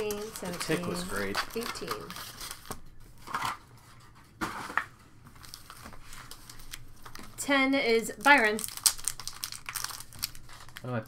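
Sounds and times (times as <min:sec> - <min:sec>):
foil wrapper crinkling and tearing: 0:00.0 - 0:03.7, 0:04.6 - 0:11.0.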